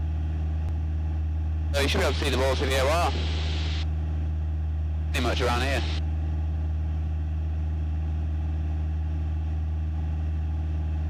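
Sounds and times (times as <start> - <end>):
airplane engine droning in cabin: 0.0 - 11.0.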